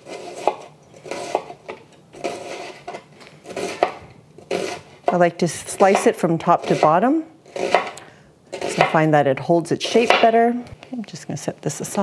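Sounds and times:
knife slicing through onion: 0.0 - 9.2, 9.8 - 10.5.

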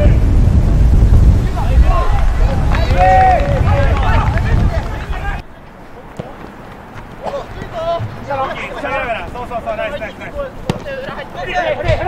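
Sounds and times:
wind buffeting microphone: 0.0 - 5.4
distant people shouting: 1.4 - 5.5.

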